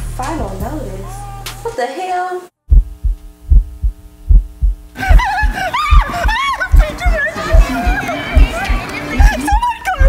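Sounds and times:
steady droning hum: 0:02.7 - 0:09.7
heartbeat thumps: 0:02.7 - 0:10.0.

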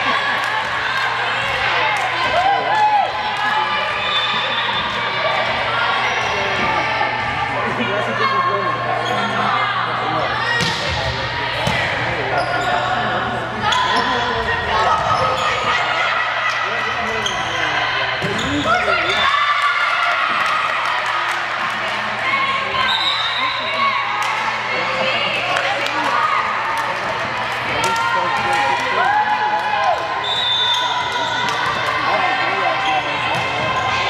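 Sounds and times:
players and spectators shouting: 0:00.0 - 0:34.0.

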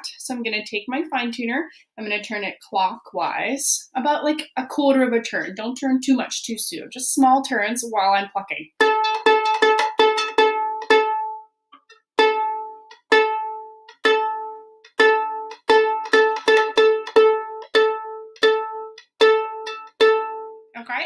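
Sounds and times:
violin string plucked: 0:08.8 - 0:20.7.

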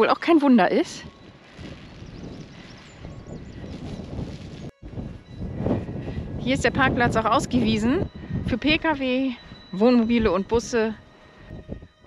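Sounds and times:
gusty wind buffeting microphone: 0:00.6 - 0:12.0.

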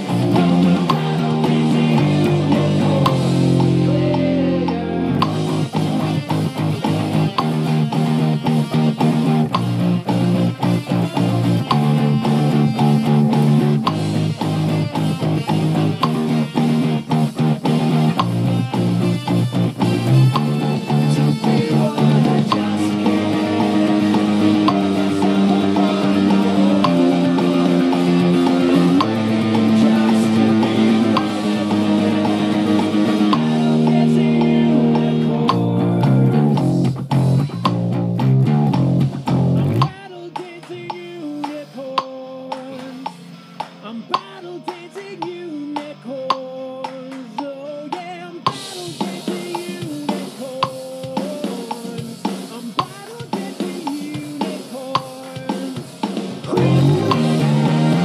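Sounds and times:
electric bass guitar: 0:00.0 - 0:40.0, 0:56.3 - 0:58.0
drum kit: 0:00.0 - 0:58.0
rock band music: 0:00.0 - 0:58.0.

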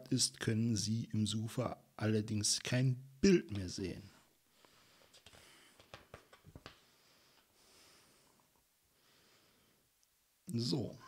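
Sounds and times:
book pages turning: 0:04.6 - 0:06.8.

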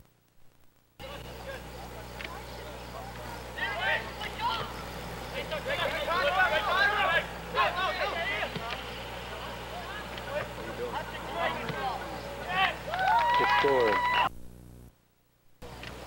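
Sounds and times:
steady low hum: 0:00.0 - 0:16.0
indistinct voices: 0:01.0 - 0:14.3.

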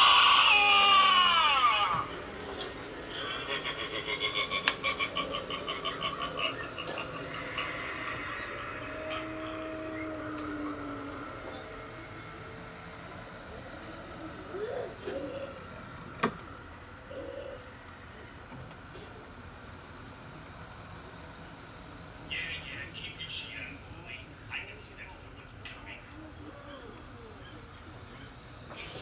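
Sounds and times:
faint tones: 0:00.0 - 0:18.4.

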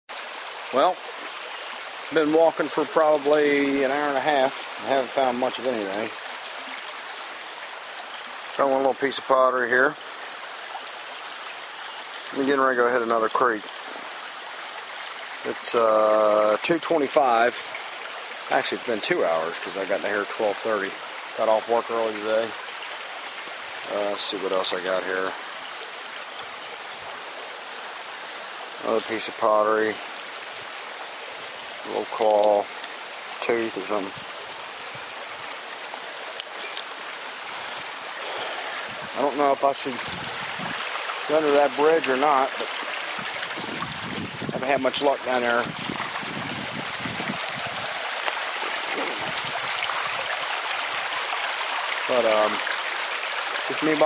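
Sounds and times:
creek water running over gravel: 0:00.1 - 0:54.0.

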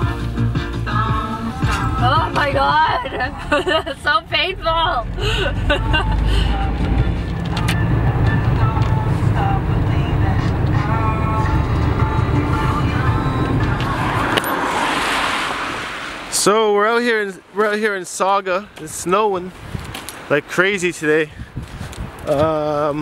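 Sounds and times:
road and engine rumble in car: 0:00.0 - 0:17.6
voices: 0:01.2 - 0:07.8.

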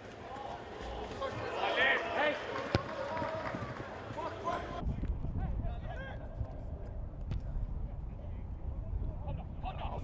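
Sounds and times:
players shouting: 0:00.2 - 0:04.8.

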